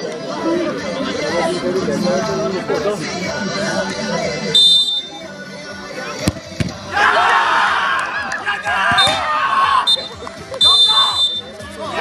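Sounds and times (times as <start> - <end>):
voices: 0.0 - 12.0
referee whistle blast: 4.6 - 5.1, 8.9 - 9.2, 9.8 - 11.5.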